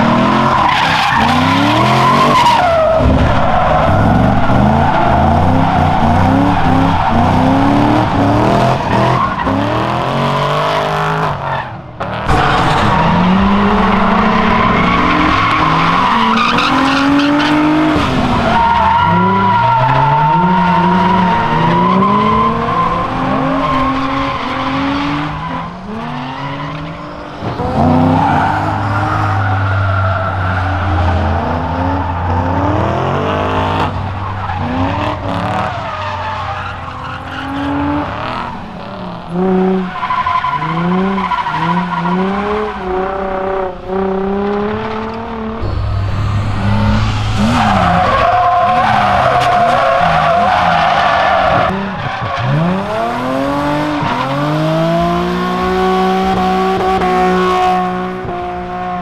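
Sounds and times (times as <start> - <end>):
car engines revving: 0.0 - 59.0.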